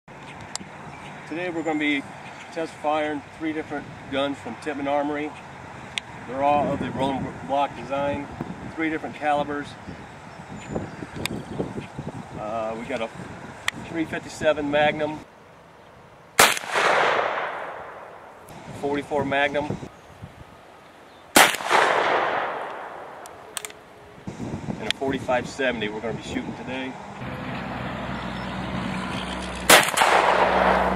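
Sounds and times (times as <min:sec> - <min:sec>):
rifle shot with echo: 0:16.4 - 0:18.2, 0:21.4 - 0:23.7, 0:29.7 - 0:30.9.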